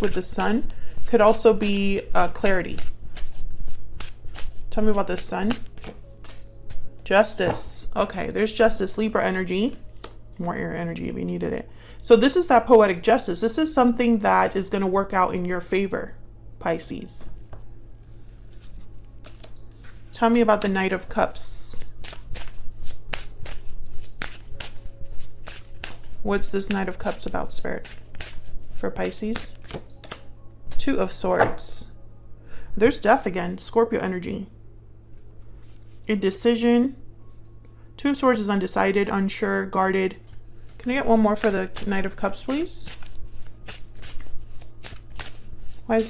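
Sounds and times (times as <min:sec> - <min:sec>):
cards being shuffled: 0:00.0 - 0:07.6, 0:18.5 - 0:20.8, 0:21.7 - 0:30.3, 0:40.3 - 0:46.0.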